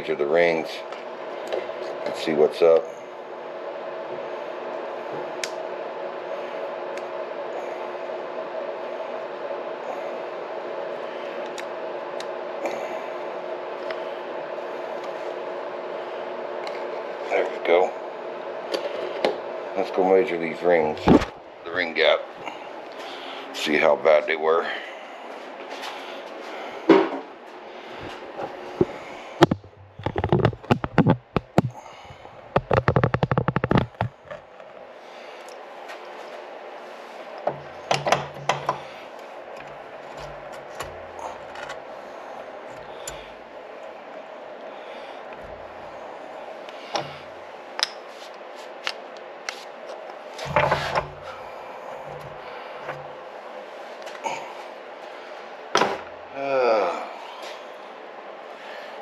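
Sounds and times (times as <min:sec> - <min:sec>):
steady background hum: 0:00.0 - 0:59.0.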